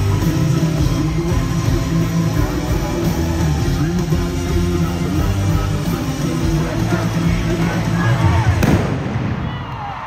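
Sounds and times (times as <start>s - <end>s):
crowd screaming and cheering: 0.0s - 10.0s.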